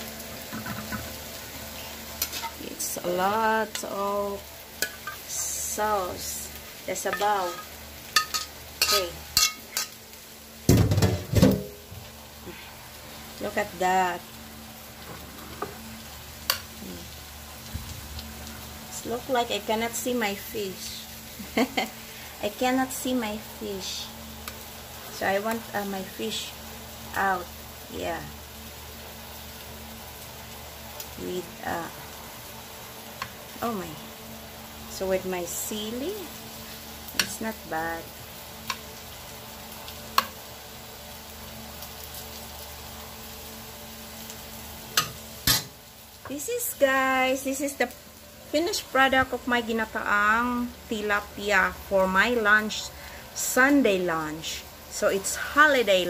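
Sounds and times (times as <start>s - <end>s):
steady hiss: 11.6s - 56.0s
faint hum: 11.7s - 56.0s.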